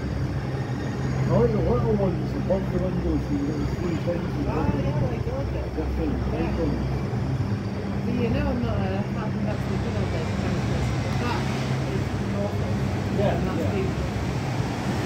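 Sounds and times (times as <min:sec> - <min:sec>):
train humming at platform: 0:00.0 - 0:15.0
people talking: 0:01.3 - 0:06.9, 0:07.9 - 0:14.3.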